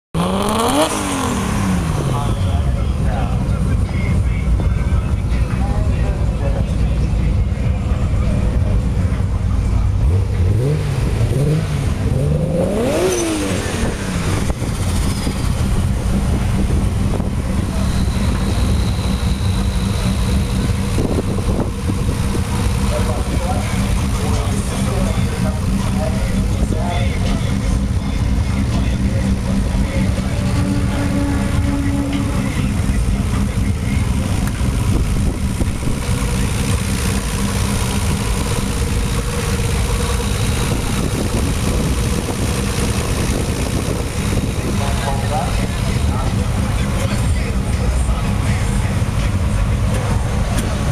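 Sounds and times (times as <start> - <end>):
car engine idling and revving: 0.1 - 50.9.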